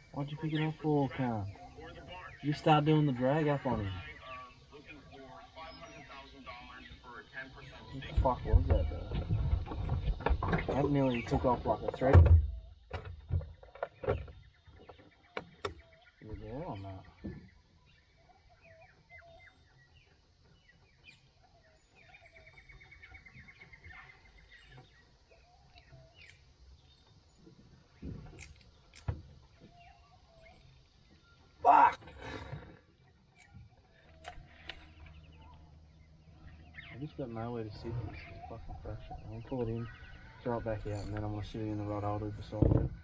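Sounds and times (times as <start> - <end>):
birds calling: 0.0 - 43.0
low voice sound: 31.6 - 32.1.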